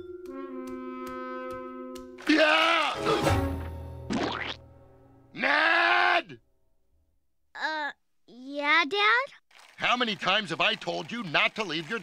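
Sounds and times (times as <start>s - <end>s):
cartoon man groaning in pain: 5.3s - 6.4s.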